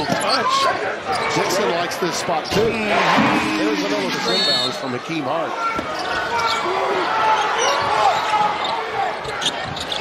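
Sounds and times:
arena crowd roar: 2.6 - 4.7, 5.6 - 9.2
sneakers squeaking on hardwood: 7.6 - 10.0.

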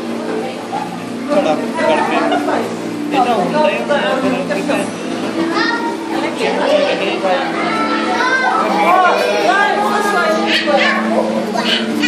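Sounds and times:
crowd of children talking: 0.0 - 12.0.

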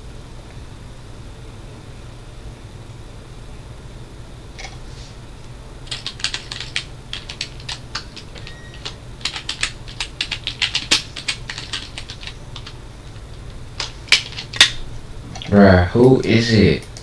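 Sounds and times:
typing on computer keyboard: 5.8 - 14.8.

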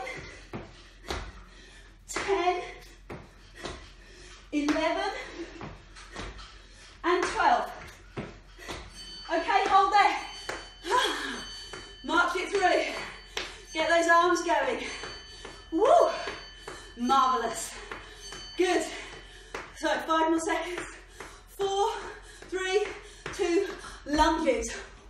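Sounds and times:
woman breathing heavily: 0.0 - 25.0.

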